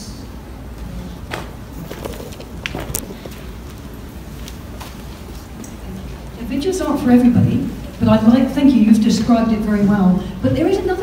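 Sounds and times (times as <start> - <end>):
low room hum: 0.0 - 11.0
microphone handling clicks: 1.3 - 5.0.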